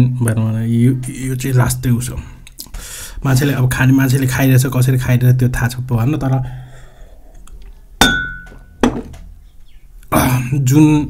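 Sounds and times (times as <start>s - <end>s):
glass clinking on hard surface: 8.0s - 9.2s.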